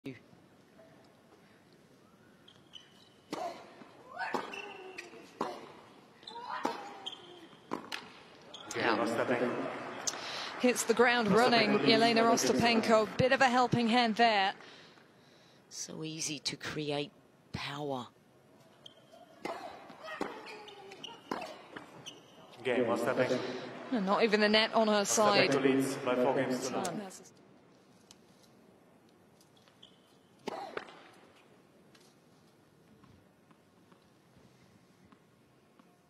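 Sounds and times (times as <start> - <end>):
shoes squeaking on court: 2.4 - 9.0, 18.6 - 22.6, 29.3 - 32.2.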